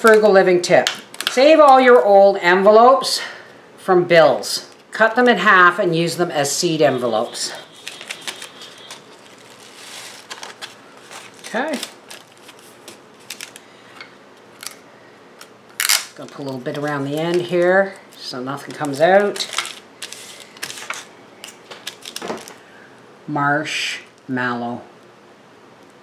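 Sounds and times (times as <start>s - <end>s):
paper rustling and crinkling: 7.6s - 14.0s, 15.8s - 22.6s.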